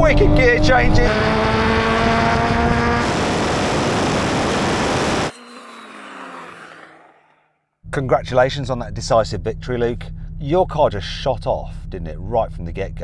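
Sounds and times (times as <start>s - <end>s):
car engine accelerating: 0.0s - 5.3s
wind and road roar: 0.0s - 5.3s
loud even rushing roar: 0.3s - 5.3s.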